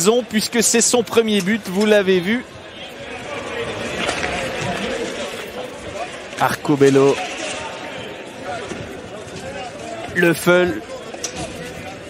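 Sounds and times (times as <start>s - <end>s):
hockey sticks and puck clattering: 0.0s - 2.4s, 3.2s - 12.0s
skates scraping ice: 3.2s - 7.9s.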